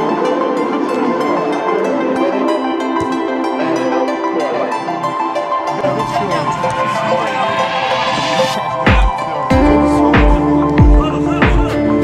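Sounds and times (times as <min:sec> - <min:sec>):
background music with held chords: 0:00.0 - 0:12.0.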